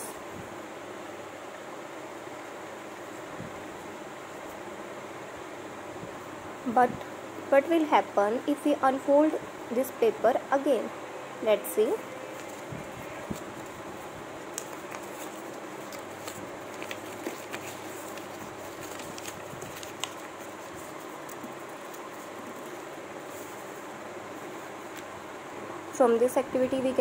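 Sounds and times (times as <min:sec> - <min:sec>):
steady background hiss: 0:00.0 - 0:27.0
paper crinkling: 0:12.2 - 0:25.2.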